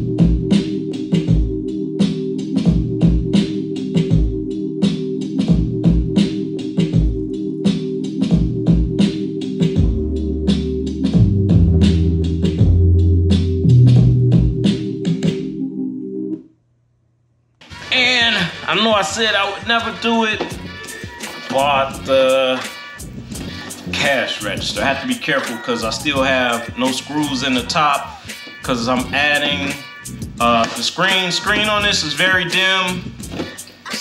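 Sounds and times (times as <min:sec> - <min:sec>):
deep bass line: 0:00.0 - 0:04.7, 0:05.5 - 0:07.4, 0:08.2 - 0:16.3, 0:21.6 - 0:22.3, 0:23.0 - 0:25.1, 0:25.8 - 0:30.7, 0:31.5 - 0:33.4
looped drum pattern: 0:08.2 - 0:15.5, 0:17.7 - 0:34.0
sustained sampled chord: 0:09.9 - 0:16.4.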